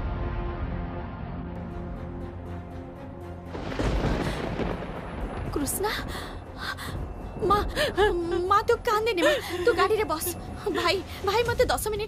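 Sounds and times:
woman sobbing: 6.6 - 11.2.

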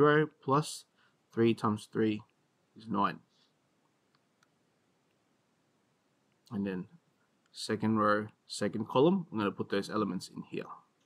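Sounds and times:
man speaking: 0.0 - 3.3, 6.5 - 10.9.

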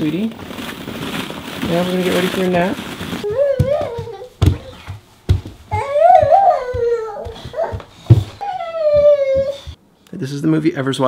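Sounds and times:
toddler calling wordlessly: 3.2 - 5.0, 5.7 - 9.8
soft thumps on carpeted stairs: 3.3 - 9.8.

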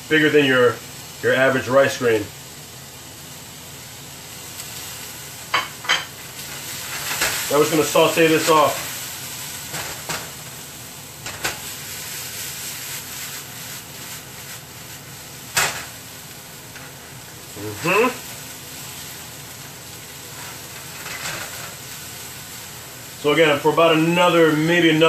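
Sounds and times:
food sizzling in a frying pan: 0.0 - 25.0.

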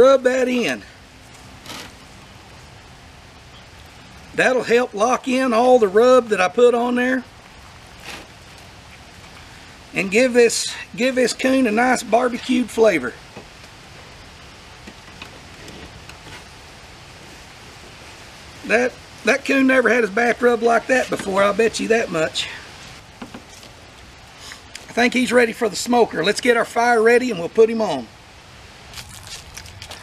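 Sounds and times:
faint background hiss: 0.0 - 30.0.

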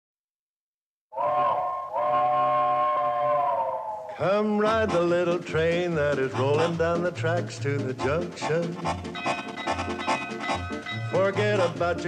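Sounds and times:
steam locomotive chime whistle: 1.1 - 4.0.

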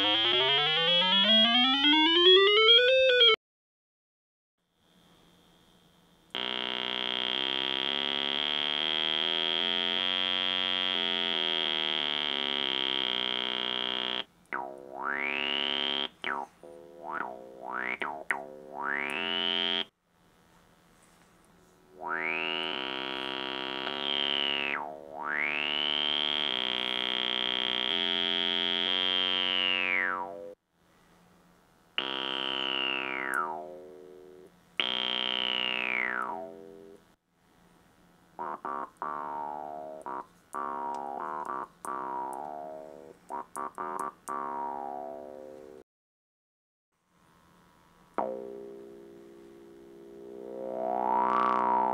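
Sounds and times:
buzzy synthesizer notes: 0.0 - 3.4, 6.4 - 19.9, 21.9 - 30.6, 32.0 - 37.0, 38.4 - 45.8, 48.2 - 51.9.

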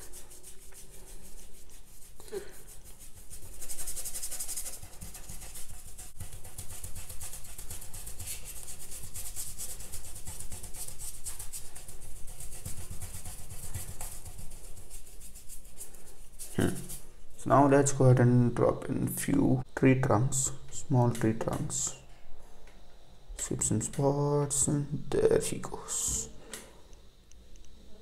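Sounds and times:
wet paintbrush rubbing on paper: 0.0 - 17.1.

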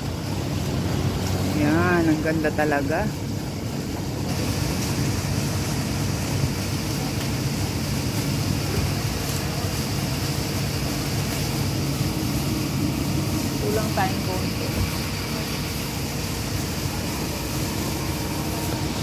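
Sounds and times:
fountain water splashing into basin: 0.0 - 19.0
low steady hum: 0.0 - 19.0.

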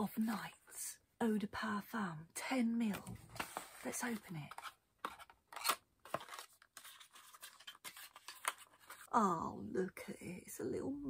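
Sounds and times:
cardboard rustling and scraping: 3.0 - 9.1.

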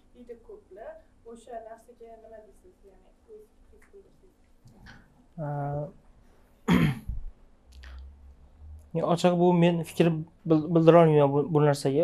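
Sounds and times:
person clearing throat: 6.7 - 7.2.

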